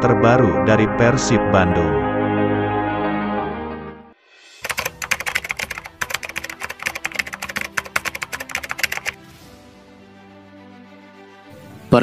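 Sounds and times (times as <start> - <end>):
keyboard typing clicks: 4.6 - 9.2
soft background music: 4.6 - 12.0.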